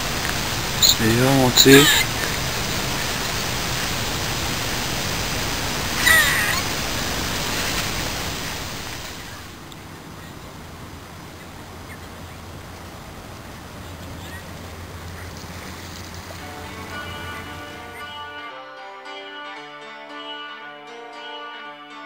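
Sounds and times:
outdoor background hiss: 0.0s - 18.8s
harsh animal call: 0.8s - 2.3s, 5.9s - 6.8s.

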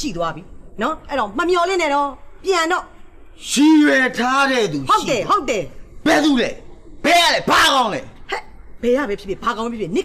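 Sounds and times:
woman talking: 0.0s - 3.0s, 4.8s - 5.8s, 8.3s - 10.0s
man talking: 3.4s - 5.2s, 6.0s - 8.1s.

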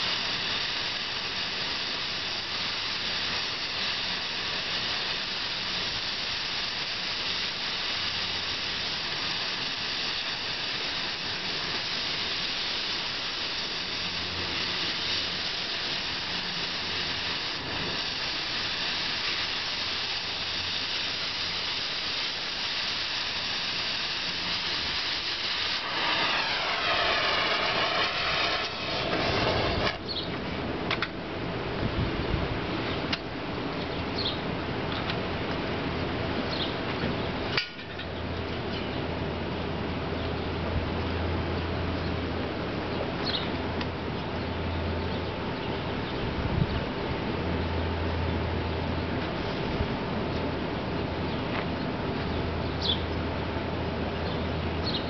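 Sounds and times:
cutting torch hissing: 0.0s - 30.4s.

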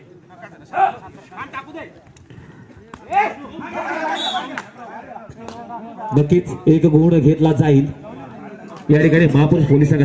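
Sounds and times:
voices shouting and chattering: 0.0s - 10.0s.

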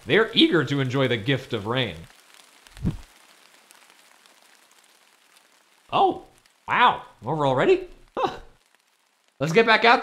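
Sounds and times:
soft falling rain: 0.0s - 10.0s
short low thump: 2.8s - 3.1s.

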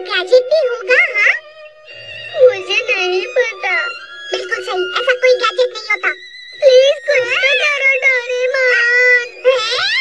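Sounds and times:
high-pitched cartoon voice wailing: 2.4s - 10.0s.

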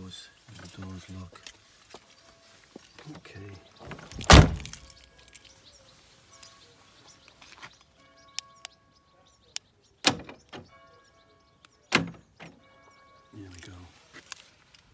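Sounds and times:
door lock actuators clunking: 3.8s - 4.9s, 10.0s - 10.8s, 11.9s - 12.6s.

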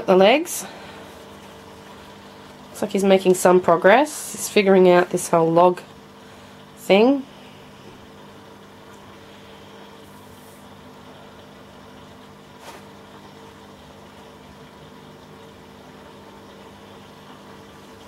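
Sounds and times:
water filter pump humming: 0.0s - 18.0s.

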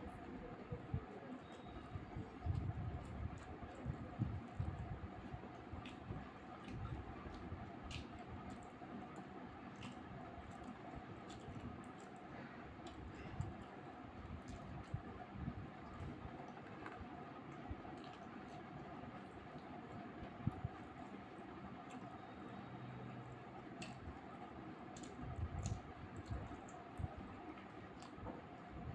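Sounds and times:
faint background hum: 0.0s - 28.9s
chewing food: 0.1s - 22.6s, 23.2s - 28.8s.

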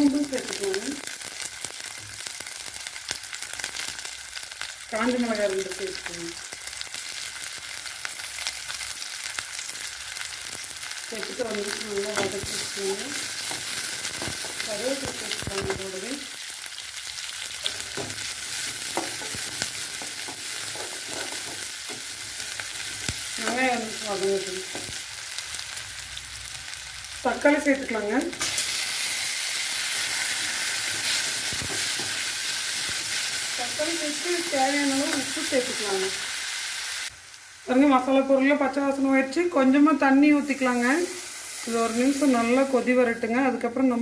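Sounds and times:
shallots frying in oil: 0.0s - 44.0s
person's voice: 11.1s - 13.2s, 14.6s - 16.3s, 23.4s - 24.7s, 27.3s - 28.4s, 33.6s - 36.2s, 37.7s - 44.0s.

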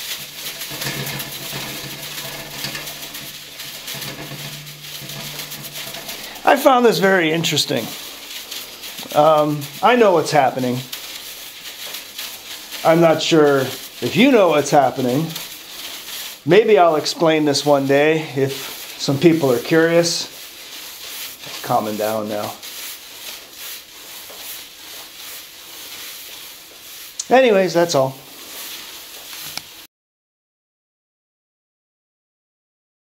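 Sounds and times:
water sizzling on stove: 0.0s - 29.9s.

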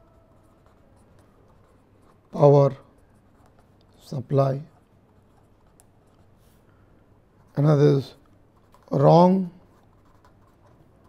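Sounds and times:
low steady hum: 0.0s - 11.0s
marker scratching on paper: 7.3s - 11.0s.

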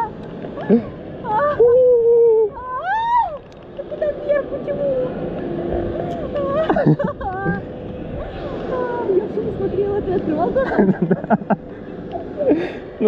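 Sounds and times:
steady rushing noise: 0.0s - 13.0s.

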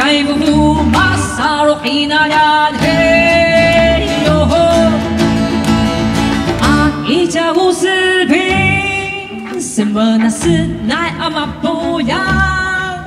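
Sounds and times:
woman singing: 0.0s - 5.2s, 6.6s - 13.0s
acoustic guitar with bass line: 0.0s - 13.0s
plucked moon guitar: 0.0s - 13.0s.

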